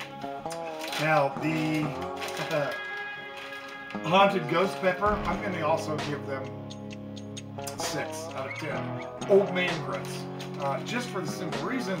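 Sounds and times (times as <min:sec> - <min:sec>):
plastic chip bag crinkling: 0:00.0 - 0:05.2
background music: 0:00.0 - 0:12.0.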